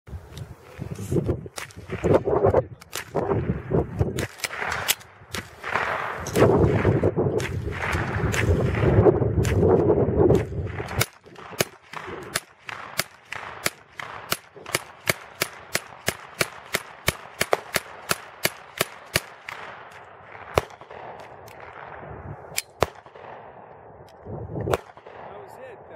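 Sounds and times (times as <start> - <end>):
carbine single shots: 4.1 - 9.7, 10.3 - 23.8, 24.7 - 25.6.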